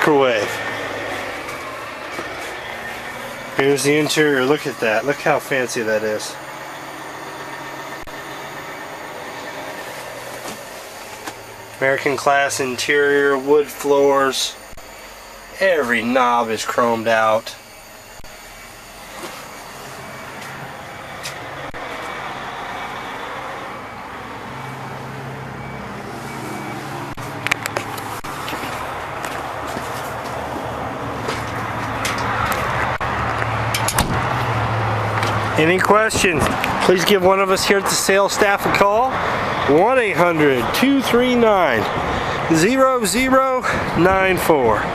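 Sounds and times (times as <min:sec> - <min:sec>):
diesel engine idling: 0:00.0 - 0:44.9
truck cab running noise: 0:00.0 - 0:44.9.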